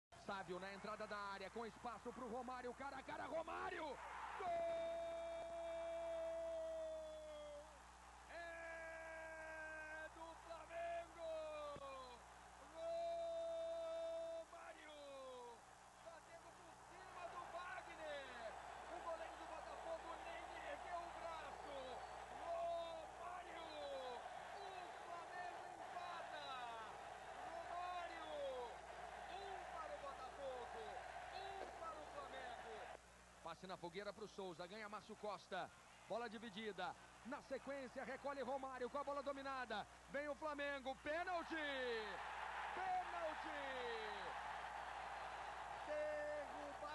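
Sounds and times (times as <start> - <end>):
commentator shouting goal: 8.3 - 33.0, 41.2 - 44.3
crowd noise: 14.4 - 33.0, 41.3 - 46.9.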